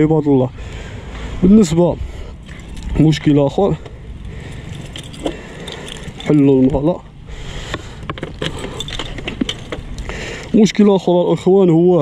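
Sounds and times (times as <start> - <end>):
keys jangling: 2.4 - 3.3, 4.2 - 6.7, 8.4 - 9.8.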